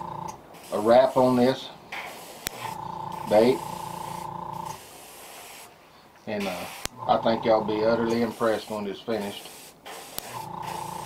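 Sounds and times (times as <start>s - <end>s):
steady hum: 0.0s - 0.5s, 2.5s - 4.8s, 6.8s - 8.3s, 10.3s - 11.0s
airbrush spraying hiss: 0.5s - 5.8s, 6.4s - 11.0s.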